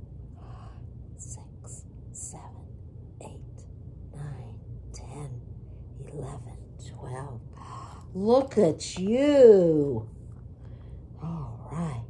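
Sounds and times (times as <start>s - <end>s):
steady low hum: 0.0s - 12.0s
woman whispering: 0.4s - 10.1s, 11.1s - 12.0s.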